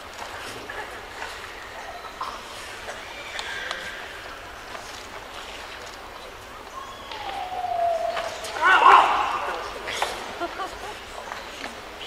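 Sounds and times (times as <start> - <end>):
crowd murmur: 0.0 - 12.0
drawn-out falling voice: 7.3 - 9.9
loud shout: 8.2 - 9.9.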